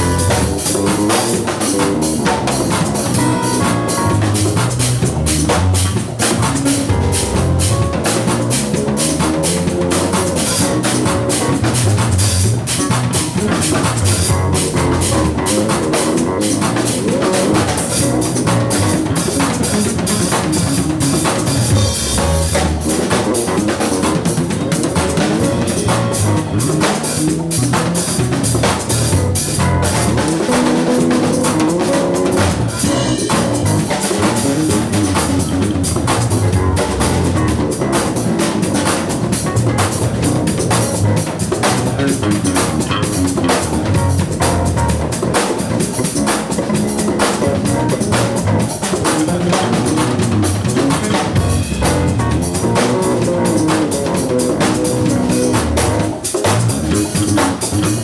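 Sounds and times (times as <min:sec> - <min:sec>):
drum kit playing fast patterns: 0:00.0 - 0:58.0
electric bass: 0:00.0 - 0:58.0
keyboards: 0:00.0 - 0:58.0.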